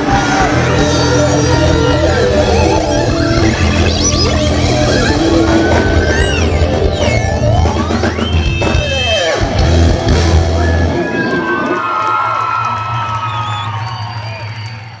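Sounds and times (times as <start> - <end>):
heavy bass: 0.0 - 11.5
rock music with drums and guitar: 0.0 - 11.7.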